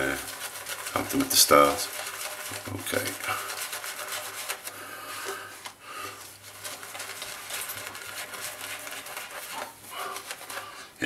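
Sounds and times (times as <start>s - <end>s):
shaving brush rubbing: 0.0s - 11.0s.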